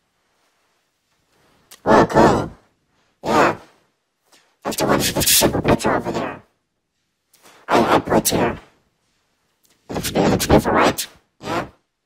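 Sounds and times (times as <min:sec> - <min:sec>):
person making wordless vocal sounds: 0:01.7 - 0:02.6, 0:04.7 - 0:06.4, 0:07.7 - 0:08.6, 0:09.9 - 0:11.8.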